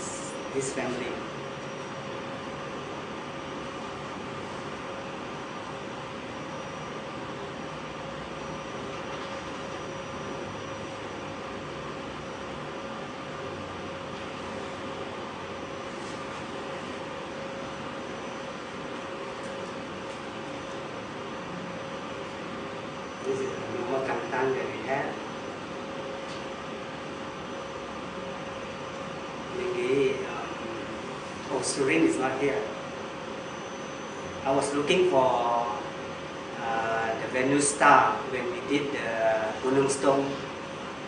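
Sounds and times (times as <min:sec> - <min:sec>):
faint constant hum: 0:00.0 - 0:41.0.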